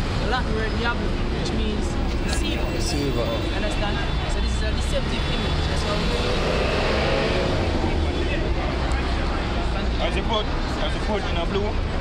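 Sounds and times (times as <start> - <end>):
traffic rumble: 0.0 - 12.0
people talking: 0.2 - 6.6.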